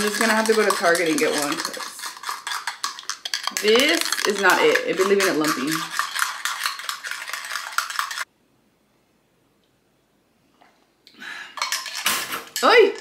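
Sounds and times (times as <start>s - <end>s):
spoon clinking against a glass: 0.0s - 8.3s.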